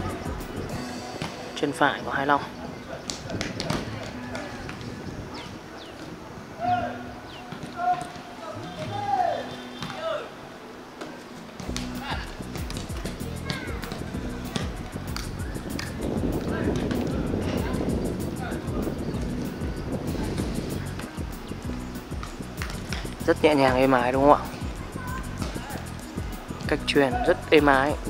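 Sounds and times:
background music with beat: 0.0s - 1.8s, 11.6s - 28.0s
players shouting: 6.6s - 10.4s.

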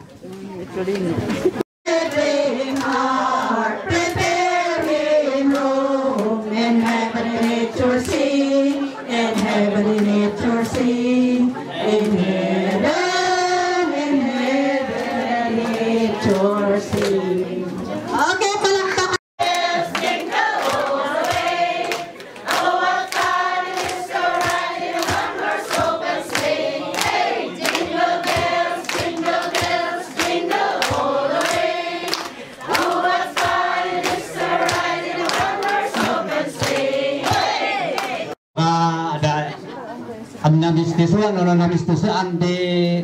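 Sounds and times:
crowd singing together: 1.5s - 18.2s, 19.4s - 38.4s
hand clapping: 2.0s - 10.9s, 19.4s - 38.2s.

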